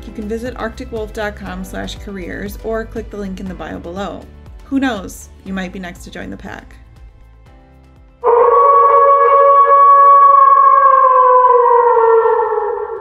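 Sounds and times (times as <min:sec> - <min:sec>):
faint background music: 0:00.0 - 0:08.2
wolf howl: 0:08.2 - 0:13.0.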